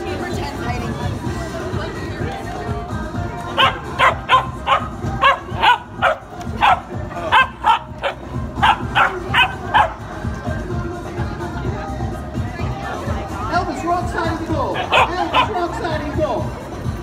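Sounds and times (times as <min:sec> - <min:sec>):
puppy barking: 0:03.5 - 0:10.0, 0:14.7 - 0:15.6.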